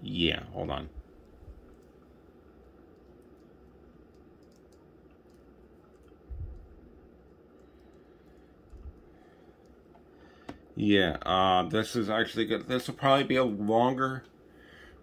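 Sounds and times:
faint clicks: 2.6 - 10.6.

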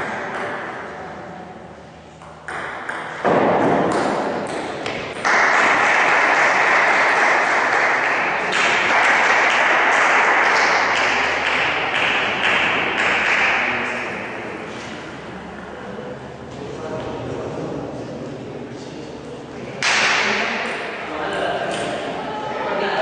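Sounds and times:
table tennis ball knocking: 2.2 - 5.4.

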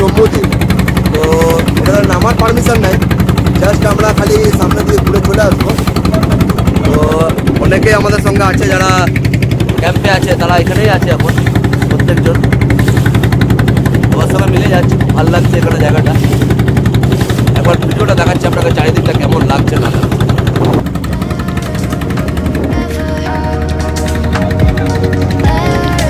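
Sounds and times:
boat engine pulsing: 0.0 - 26.0
people's voices: 0.0 - 26.0.

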